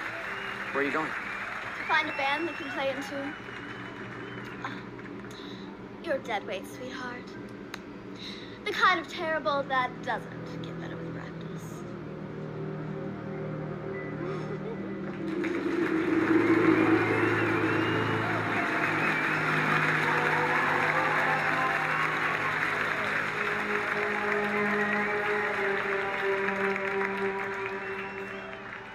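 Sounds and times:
crowd chattering and cheering: 0.0 - 5.4, 14.2 - 28.9
background music: 0.0 - 28.9.

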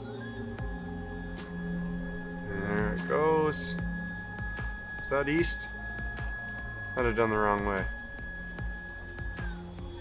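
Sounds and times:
ambient background music: 0.0 - 10.0
high motor whine: 0.0 - 10.0.

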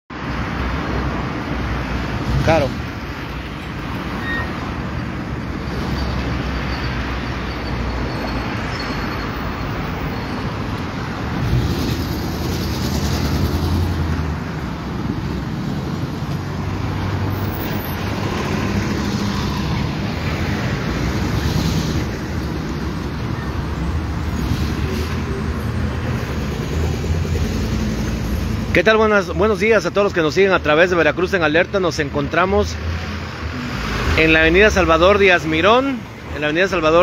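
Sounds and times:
roar of passing traffic: 0.2 - 30.9, 32.0 - 37.0
vehicle engines running: 0.7 - 30.0.

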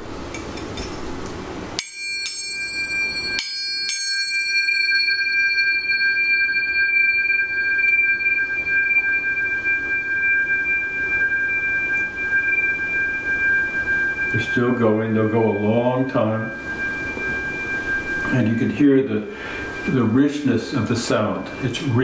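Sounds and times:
tuning forks struck and ringing: 1.8 - 22.0.

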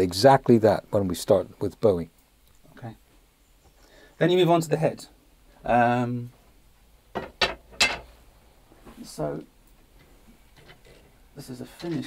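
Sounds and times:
objects clacking on workbench: 7.1 - 8.1.

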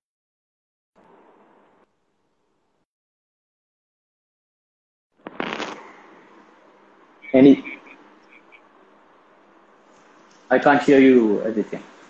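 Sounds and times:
low hiss: 1.0 - 2.8, 5.2 - 12.0
harsh crackly burst: 5.2 - 8.6.

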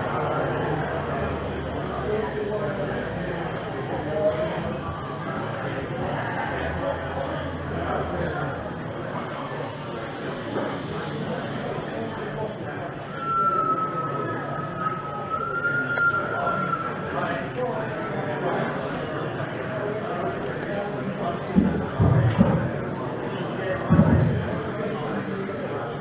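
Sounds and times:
indistinct chatter of visitors: 0.0 - 26.0
steady high whistle-like tone: 12.4 - 18.7.

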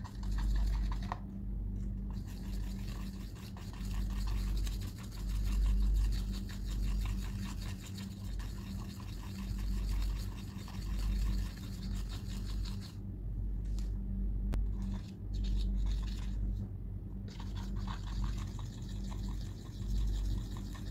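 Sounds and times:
brush scraping paint in palette: 0.0 - 13.0, 14.6 - 16.7, 17.3 - 20.9
steady low hum: 0.0 - 20.9.

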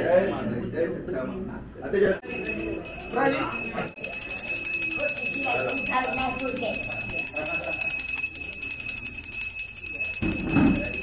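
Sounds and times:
hand bell ringing rapidly: 2.2 - 11.0.

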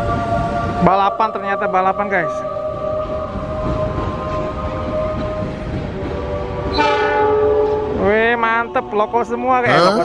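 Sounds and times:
trains rumbling: 0.0 - 10.0
train horn: 6.4 - 8.0.

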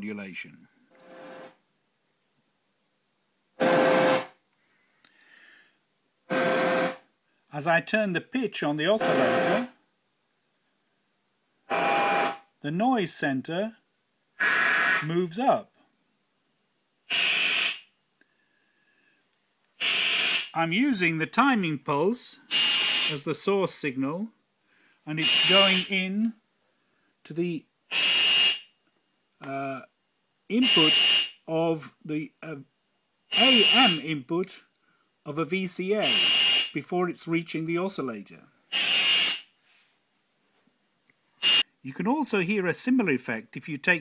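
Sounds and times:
synthesizer noise band: 1.0 - 1.5, 3.6 - 4.4, 6.3 - 7.0, 9.0 - 9.7, 11.7 - 12.4.

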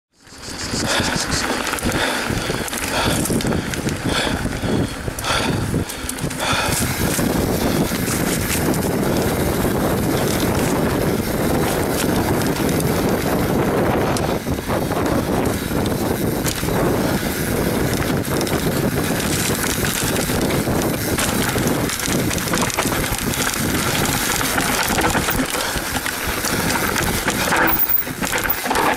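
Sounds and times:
bike tyres on dirt trail: 0.2 - 28.9
wind buffeting microphone: 0.2 - 28.9
bike clicks and rattles: 0.3 - 28.9.

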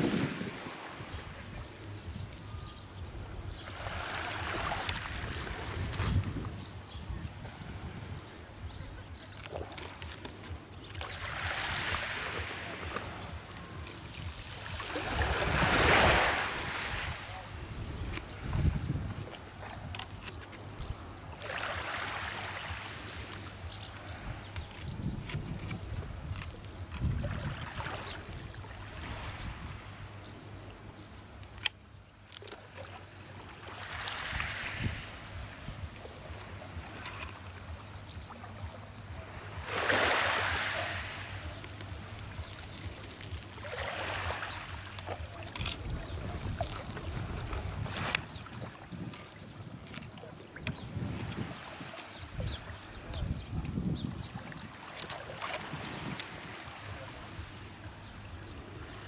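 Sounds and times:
wind rumble on microphone: 0.0 - 2.3, 4.6 - 9.3, 14.2 - 20.0, 23.6 - 30.2, 45.2 - 54.8
waves washing onto pebbles: 9.8 - 17.3, 33.6 - 35.3, 39.5 - 49.1.

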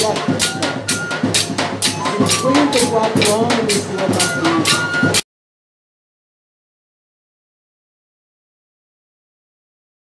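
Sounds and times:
drums beating steady rhythm: 0.0 - 5.2
voices singing: 0.0 - 5.2.

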